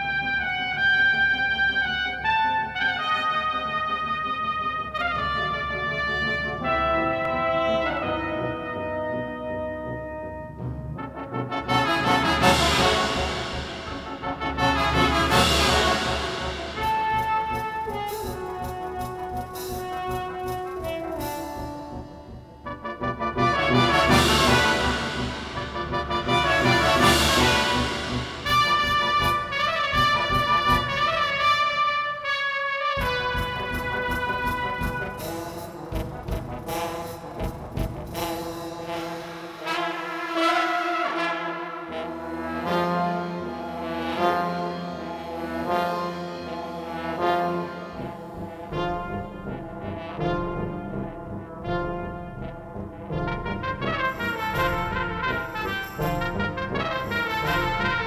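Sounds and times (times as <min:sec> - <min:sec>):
brass quintet playing: 0:00.0 - 0:58.0.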